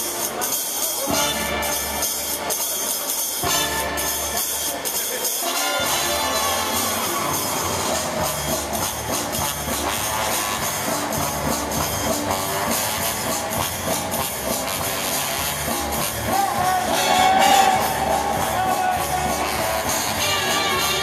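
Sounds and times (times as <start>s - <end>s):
ballroom dance music over loudspeakers: 0.0s - 21.0s.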